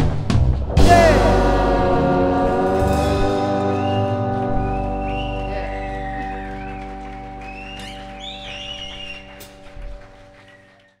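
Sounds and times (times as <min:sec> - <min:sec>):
band chord ringing out: 0:00.7 - 0:10.4
high wavering notes: 0:00.8 - 0:10.6.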